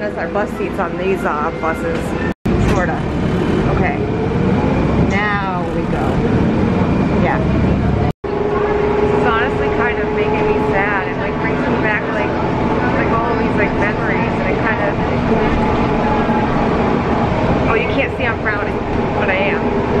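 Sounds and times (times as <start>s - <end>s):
bus engine and road noise: 0.0s - 20.0s
indistinct passenger voices: 0.0s - 20.0s
steady hum: 2.5s - 20.0s.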